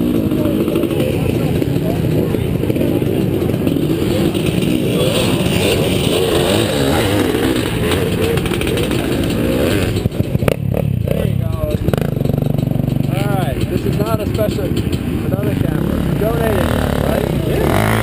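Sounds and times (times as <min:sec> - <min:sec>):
dirt bike engine idling: 0:00.0 - 0:18.0.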